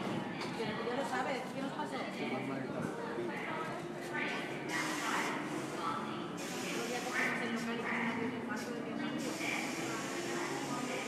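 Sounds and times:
people chattering: 0.0 - 11.0
subway train pulling out: 4.5 - 11.0.

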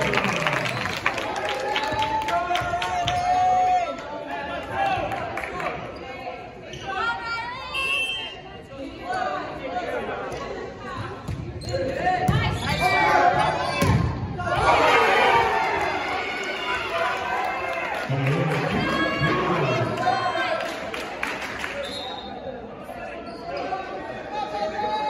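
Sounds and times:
players and spectators shouting: 11.9 - 20.6.

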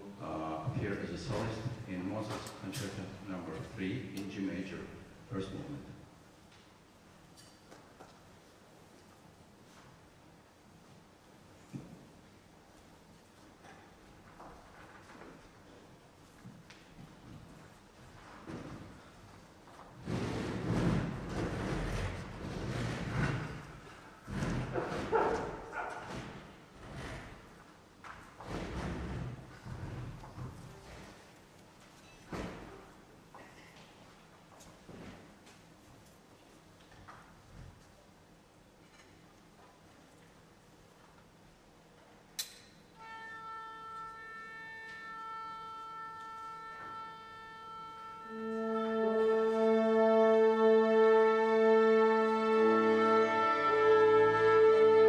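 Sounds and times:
footsteps on stage: 12.8 - 38.0
chairs and music stands thudding: 16.5 - 27.5, 32.0 - 33.7
sharp click: 42.4 - 42.8
orchestra sustained chord: 43.0 - 55.0
solo instrument long note: 43.0 - 55.0.

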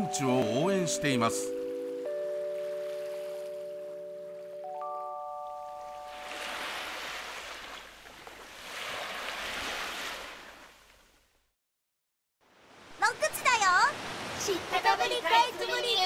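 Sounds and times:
bell-like mallet jingle: 0.0 - 6.5
rushing noise like waves: 6.0 - 10.8, 12.4 - 15.4.

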